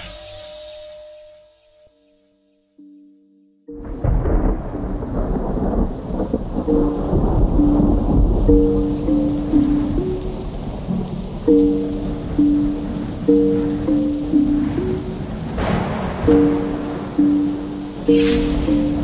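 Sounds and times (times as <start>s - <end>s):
rain: 0.0s - 1.8s, 3.7s - 19.0s
slow melody of held notes: 0.9s - 19.0s
low rolling thunder: 3.8s - 19.0s.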